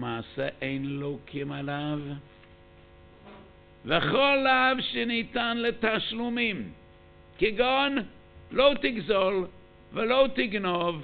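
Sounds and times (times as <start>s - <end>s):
man lecturing: 0.0s - 2.2s, 3.9s - 6.8s, 7.4s - 11.0s
faint electrical hum: 0.0s - 11.0s.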